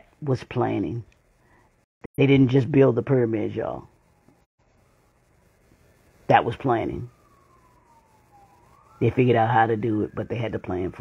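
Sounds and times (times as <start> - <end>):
faint siren wailing: 2.7 - 11.0.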